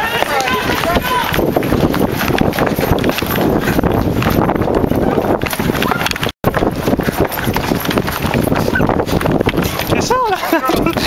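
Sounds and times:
handheld camera knocking: 0:00.0 - 0:10.1
running footsteps on pavement: 0:00.0 - 0:11.0.

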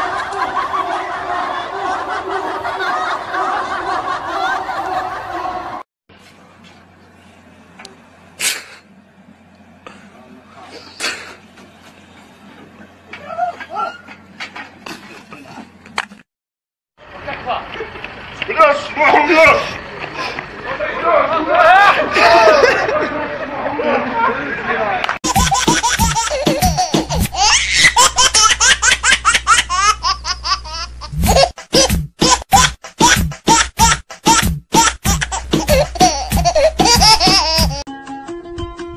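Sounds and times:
high-pitched laughter: 0:21.6 - 0:23.1, 0:25.2 - 0:37.9.

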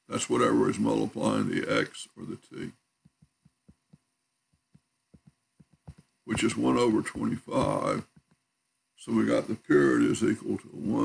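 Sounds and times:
stylus tapping on tablet screen: 0:03.0 - 0:08.5.

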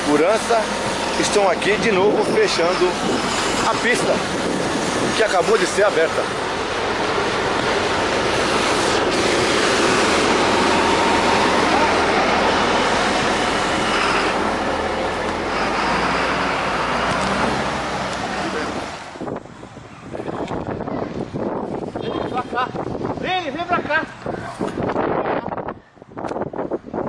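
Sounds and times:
road traffic passing cars: 0:00.0 - 0:27.0.

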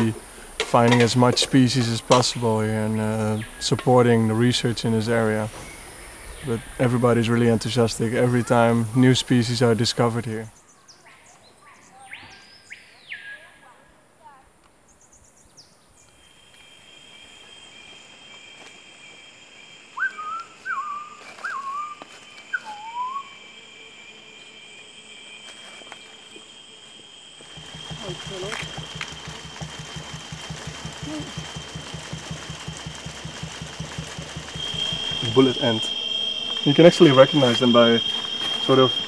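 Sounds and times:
loud insect buzz with low pulsing: 0:00.0 - 0:10.5, 0:16.0 - 0:39.0
insects trilling: 0:00.0 - 0:39.0
bird whistling short notes: 0:20.0 - 0:23.3.

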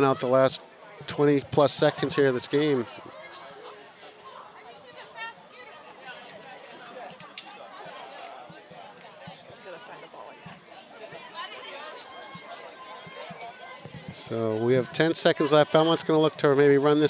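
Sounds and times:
shouts and chatter of players: 0:00.0 - 0:17.0.

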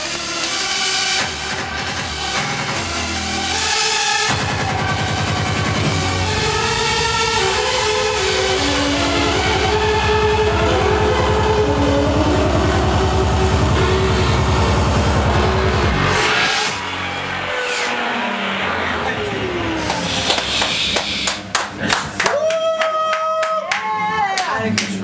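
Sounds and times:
heavy fast bass beat: 0:00.0 - 0:17.5
synth melody lines: 0:00.0 - 0:20.6
hardstyle dance music over pa: 0:00.0 - 0:21.7
rising synth sweeps: 0:00.0 - 0:21.8.

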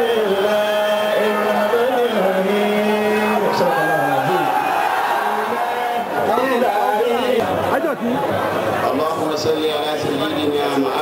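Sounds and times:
several people talking: 0:00.0 - 0:11.0.

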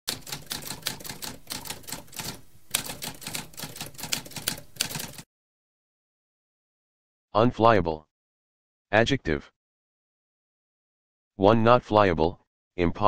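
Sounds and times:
typewriter keys clicking: 0:00.1 - 0:05.2.

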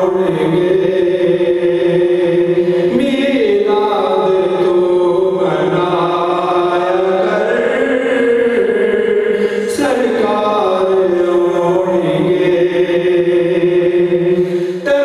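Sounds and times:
man chanting devotional recitation: 0:00.0 - 0:15.0.

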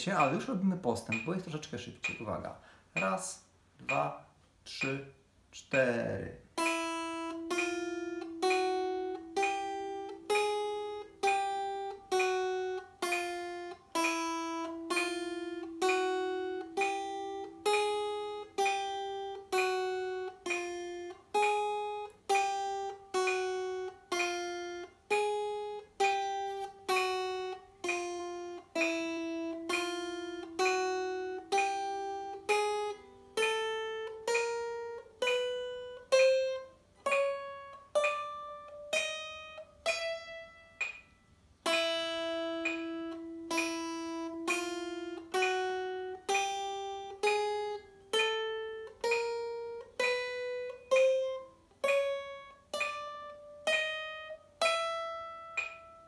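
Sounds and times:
acoustic guitar picked notes: 0:00.0 - 0:56.0.

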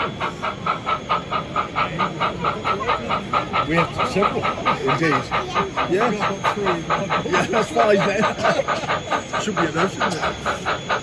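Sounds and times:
model steam locomotive chuffing: 0:00.0 - 0:11.0.

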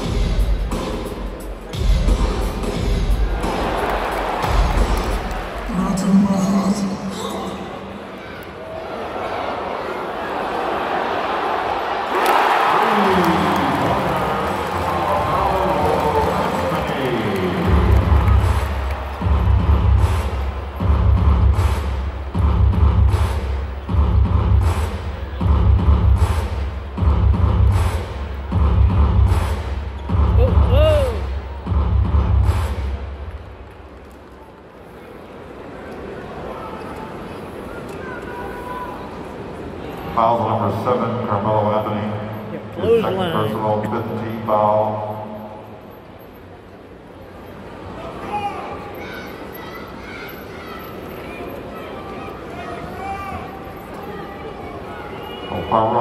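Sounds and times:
crowd murmur: 0:00.0 - 0:12.1
arena crowd cheering: 0:03.0 - 0:06.1, 0:07.0 - 0:21.8, 0:30.0 - 0:31.7
heavy bass drum beat: 0:17.7 - 0:32.8.

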